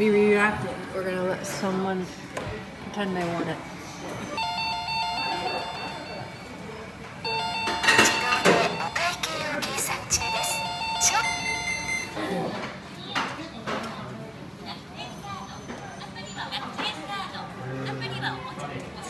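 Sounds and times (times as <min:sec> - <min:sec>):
background chatter: 0:00.0 - 0:19.0
electronic chime jingle: 0:04.4 - 0:06.5, 0:10.1 - 0:12.4.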